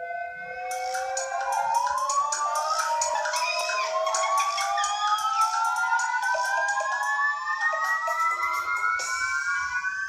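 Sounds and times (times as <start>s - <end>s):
rising siren-like glide: 0.0s - 10.0s
light music: 0.1s - 10.0s.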